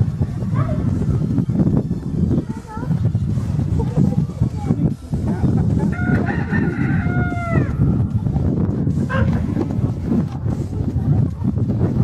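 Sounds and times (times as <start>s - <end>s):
loud low background noise: 0.0s - 12.0s
rooster crowing: 5.9s - 7.8s.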